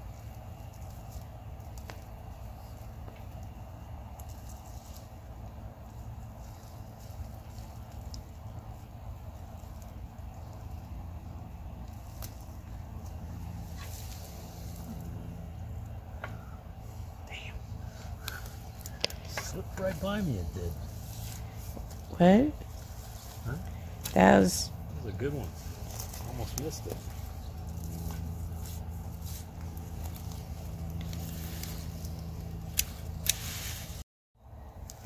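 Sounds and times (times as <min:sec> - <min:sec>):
low outdoor rumble: 0:00.0 - 0:35.0
soil and stems crackling and rustling: 0:00.0 - 0:35.0
stems snapping: 0:00.1 - 0:05.2, 0:06.0 - 0:15.1, 0:18.1 - 0:19.9, 0:23.6 - 0:24.2, 0:25.4 - 0:33.5.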